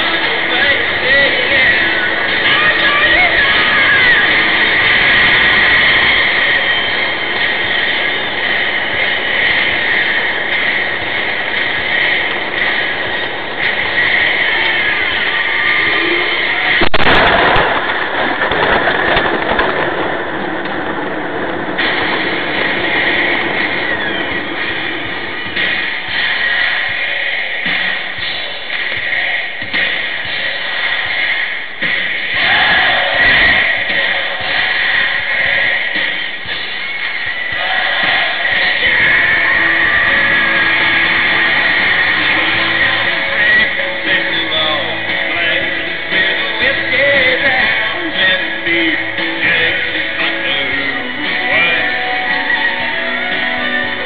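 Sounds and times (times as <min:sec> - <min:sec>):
rough rush of noise: 0:00.0 - 0:54.0
vehicle crash: 0:00.0 - 0:54.0.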